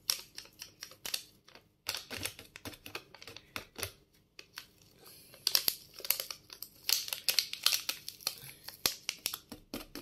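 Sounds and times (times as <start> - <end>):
plastic sachet crinkling: 0.0 - 10.0.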